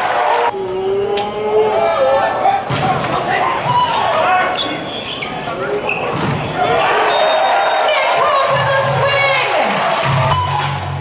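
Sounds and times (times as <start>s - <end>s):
players shouting in echoing hall: 0.0s - 11.0s.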